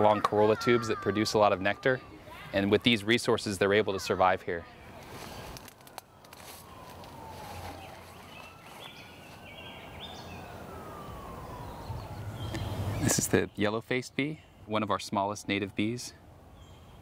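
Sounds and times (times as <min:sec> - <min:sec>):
faint siren wailing: 0:00.0 - 0:03.9, 0:04.7 - 0:13.4
outdoor background noise: 0:00.0 - 0:17.0.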